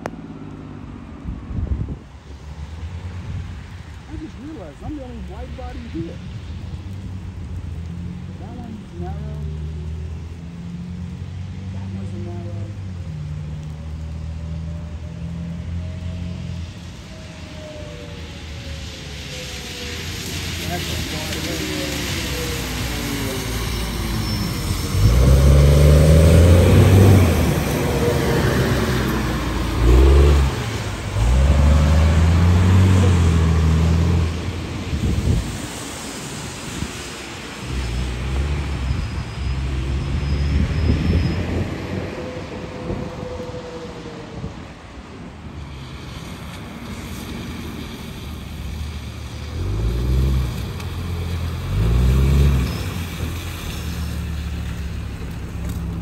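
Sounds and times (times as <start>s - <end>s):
tyre hiss on wet road: 1.8s - 42.6s, 43.2s - 56.0s
bus engine revving: 21.6s - 35.4s.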